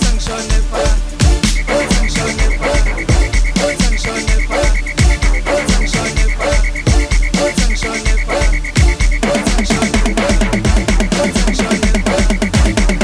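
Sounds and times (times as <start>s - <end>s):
dance music: 0.0s - 13.0s
rapidly pulsing high tone: 0.0s - 13.0s
heavy bass kick: 1.2s - 13.0s.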